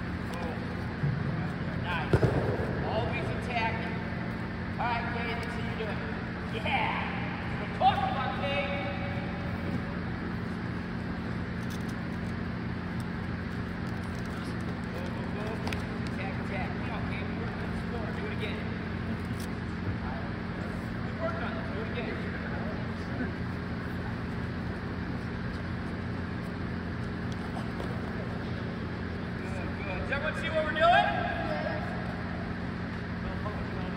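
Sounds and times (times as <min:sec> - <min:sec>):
low hum of gym room: 0:00.0 - 0:33.9.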